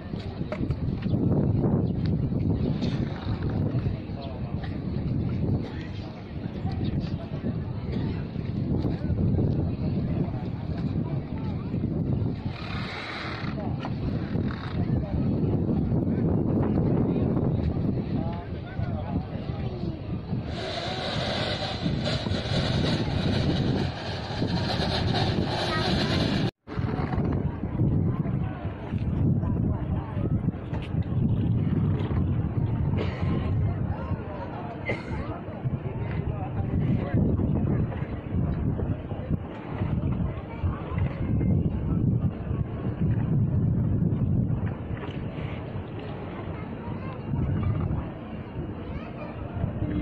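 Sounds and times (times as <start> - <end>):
wind buffeting microphone: 0.0 - 50.0
people talking indistinctly: 2.4 - 50.0
outdoor rumble: 20.4 - 28.2
hiss: 20.5 - 26.5.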